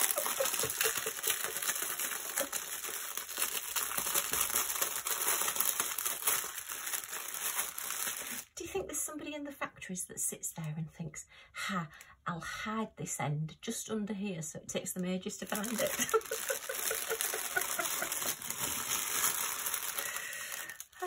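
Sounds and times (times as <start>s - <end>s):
plastic bag crinkling: 0.0s - 8.6s, 15.4s - 21.0s.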